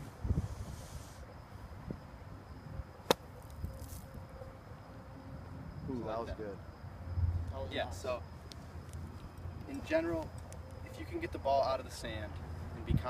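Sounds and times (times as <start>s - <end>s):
faint high insect tone: 0.0s - 13.0s
golf club striking sand: 3.1s - 4.0s.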